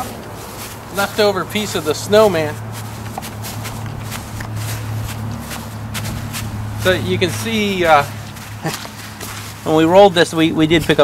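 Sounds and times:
footsteps on dry grass: 0.0 - 11.0
steady low hum: 0.0 - 11.0.

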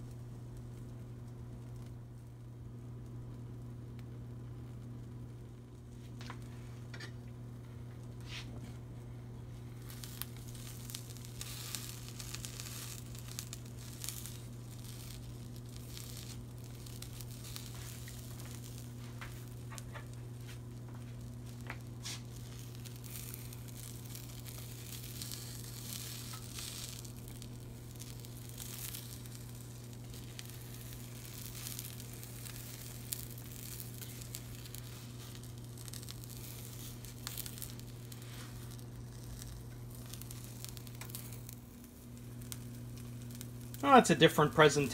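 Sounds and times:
steady low hum: 0.0 - 44.9
omelet sizzling in frying pan: 9.4 - 44.9.

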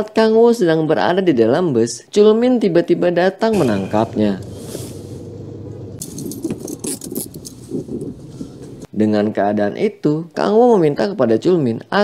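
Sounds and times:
metal handcuffs clinking: 6.0 - 8.8.

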